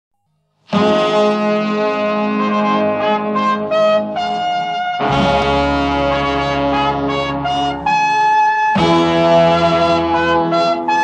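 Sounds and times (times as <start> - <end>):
brass instruments held chord: 0.7 - 11.0.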